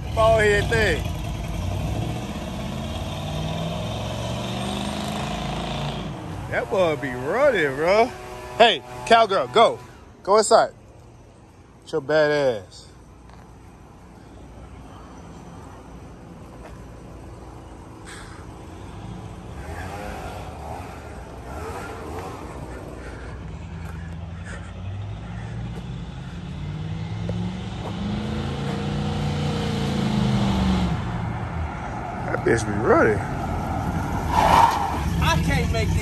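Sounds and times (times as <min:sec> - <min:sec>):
car engine revving: 0:00.0 - 0:10.1, 0:18.0 - 0:36.0.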